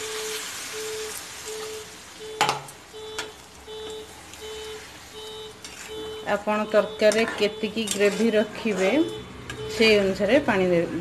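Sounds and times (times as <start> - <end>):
water hissing in hot curry: 0.0 - 2.4
short electronic beeps: 0.0 - 10.1.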